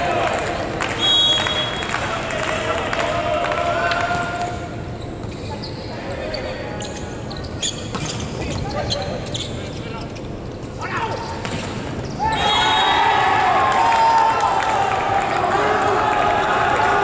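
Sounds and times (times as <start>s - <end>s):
players calling out: 10.8s - 17.0s.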